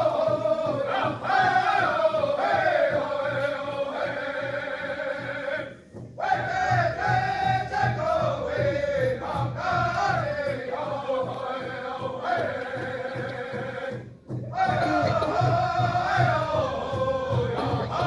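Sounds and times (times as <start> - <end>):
group singing in unison: 0.0 - 18.0
steady drumbeat: 0.0 - 18.0.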